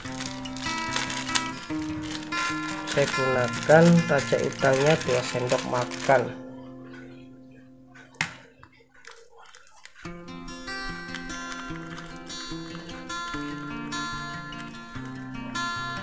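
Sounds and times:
plucked guitar tune: 0.0 - 8.2, 10.0 - 16.0.

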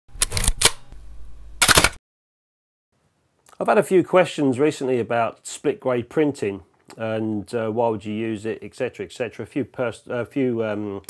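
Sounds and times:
camera shutter clicks: 0.2 - 0.8, 1.6 - 2.0.

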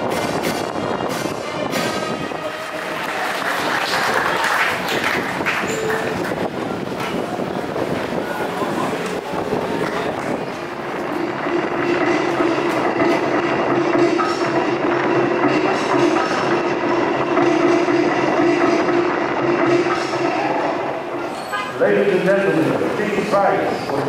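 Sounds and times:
stadium crowd cheering: 1.5 - 10.8.

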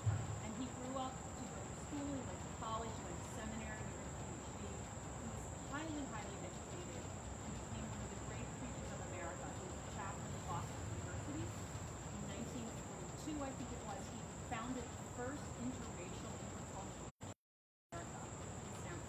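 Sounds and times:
crickets chirping drone: 0.0 - 17.1, 18.0 - 19.0.

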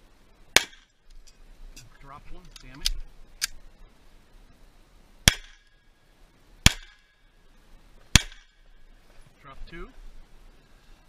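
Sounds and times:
pistol shots: 0.6 - 0.9, 5.3 - 5.7, 6.6 - 7.1, 8.2 - 8.6.

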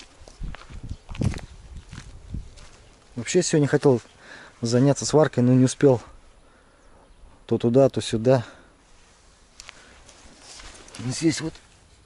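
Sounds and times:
footsteps on gravel: 0.0 - 5.0, 9.6 - 11.6.

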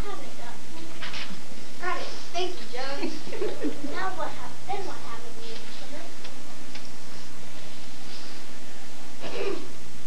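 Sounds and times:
steady low hum and hiss: 0.0 - 10.0.

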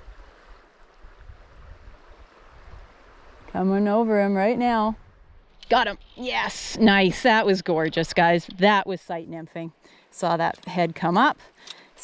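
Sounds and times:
stream water rushing: 0.0 - 4.4.

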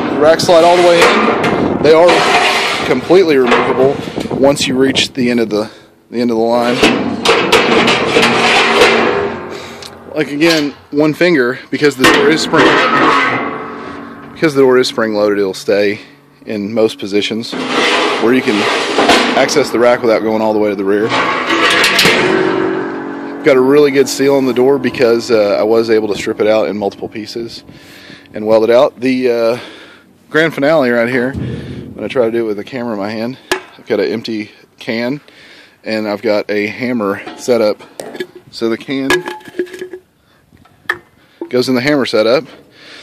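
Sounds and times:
sharp metal clanks: 0.0 - 4.4, 6.5 - 33.9
metal door scraping: 0.0 - 5.1, 6.5 - 10.8, 11.8 - 33.2
lingering metallic ringing: 0.0 - 34.4.

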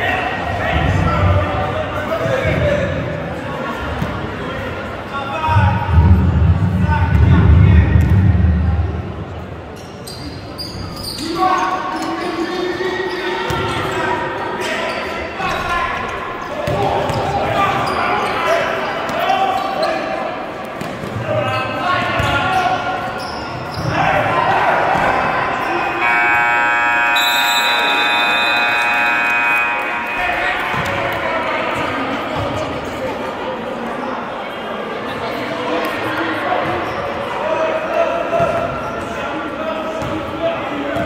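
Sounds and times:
players' voices echoing: 0.0 - 41.0
scoreboard horn buzzing: 25.9 - 30.9.

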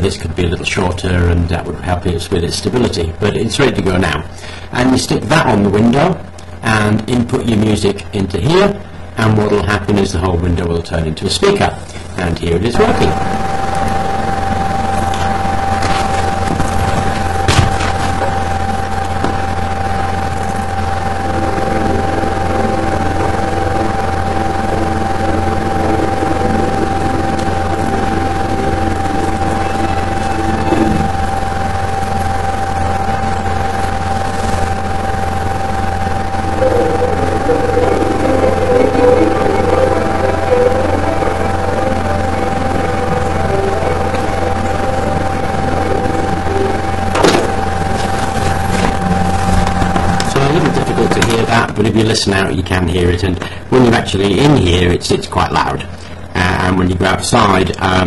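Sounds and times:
loud steady hum: 0.0 - 58.0
steady high tone: 0.0 - 58.0.

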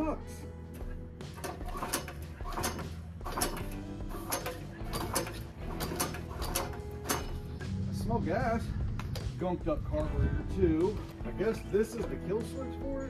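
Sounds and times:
background music: 0.0 - 13.0
pull-starter cord zipping: 0.8 - 7.5
engine turning over: 0.8 - 9.2.

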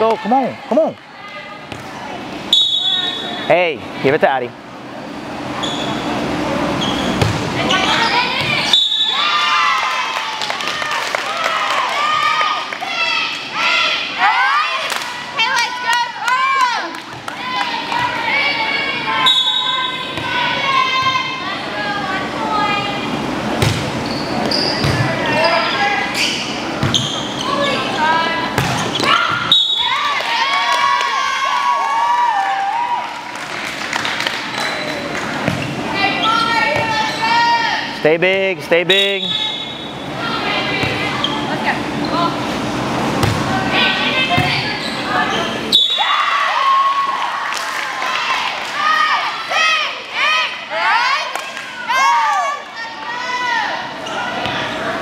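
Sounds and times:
volleyball slaps: 23.6 - 24.0, 28.5 - 29.9, 43.1 - 43.5.

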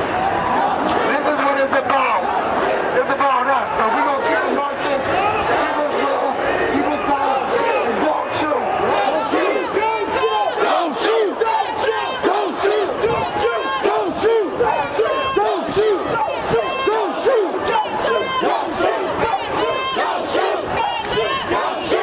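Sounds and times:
crowd chanting in unison: 0.0 - 3.0, 3.7 - 22.0.

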